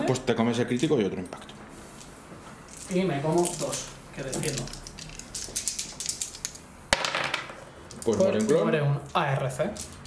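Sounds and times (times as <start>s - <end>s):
dice rolling on a table: 3.4s - 8.6s.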